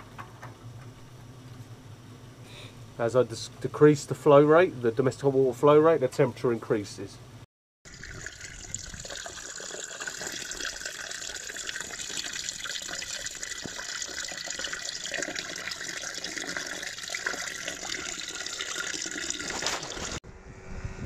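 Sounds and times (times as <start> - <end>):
water from hose splashing on grate: 7.9 - 20.2.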